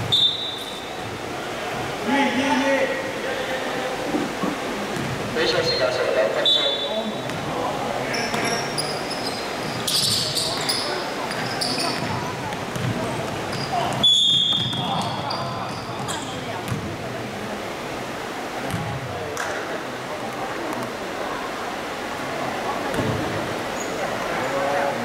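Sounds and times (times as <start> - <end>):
ball bouncing on court: 4.9 - 5.2, 7.2 - 7.5, 8.3 - 8.6, 9.6 - 17.0, 18.7 - 19.6, 22.9 - 23.2
sneakers squeaking on floor: 8.1 - 16.8.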